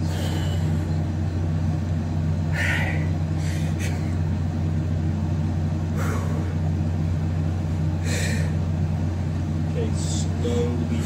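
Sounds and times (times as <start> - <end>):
low mechanical hum: 0.0 - 11.0
short breaths: 7.9 - 8.6.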